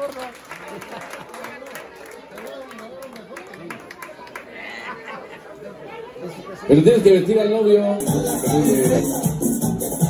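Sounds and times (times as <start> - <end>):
chatter of several voices: 0.6 - 9.2.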